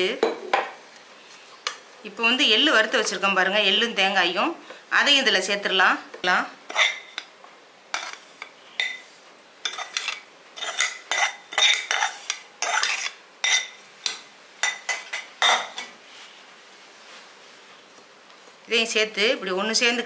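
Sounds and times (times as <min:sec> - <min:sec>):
spoon scraping metal pan: 0:06.7 - 0:07.3, 0:07.9 - 0:13.8.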